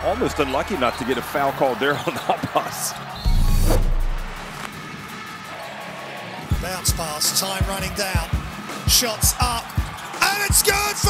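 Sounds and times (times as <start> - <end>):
deep boom: 3.3 - 4.6.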